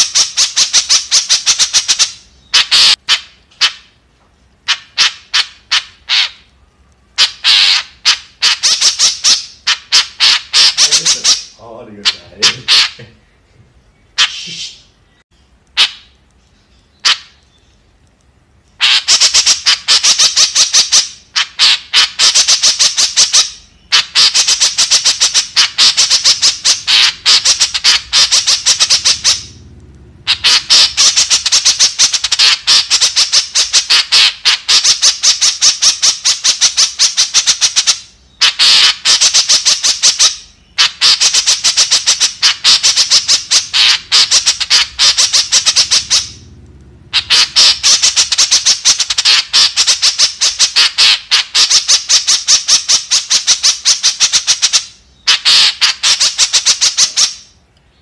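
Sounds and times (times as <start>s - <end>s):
bird harsh chattering calls: 0.0s - 4.0s, 4.6s - 13.4s, 14.0s - 15.2s, 15.8s - 17.9s, 18.8s - 57.6s.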